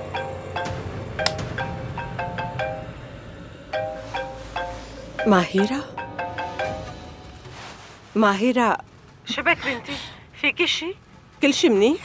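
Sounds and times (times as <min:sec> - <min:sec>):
marimba ringtone: 0:00.0 - 0:02.9, 0:03.8 - 0:07.4.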